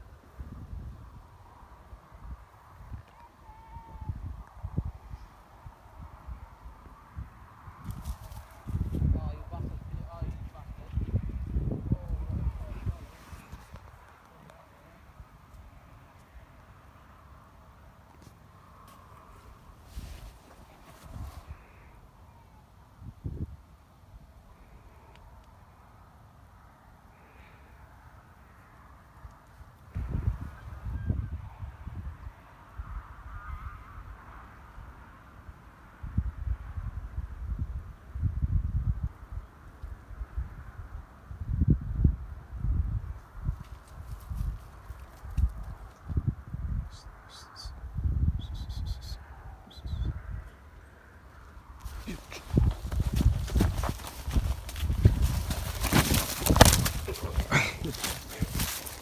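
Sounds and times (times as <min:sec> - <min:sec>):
wind buffeting microphone: 0:03.7 - 0:14.1, 0:29.9 - 0:33.0, 0:40.1 - 0:46.9, 0:51.8 - 0:59.0
clothing and handling noise: 0:51.9 - 0:59.0
footsteps running on grass: 0:51.9 - 0:59.0.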